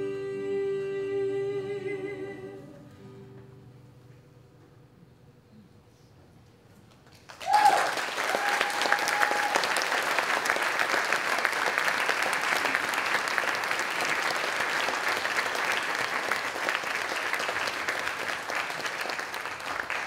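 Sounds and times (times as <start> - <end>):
audience applauding: 7.0 - 20.0.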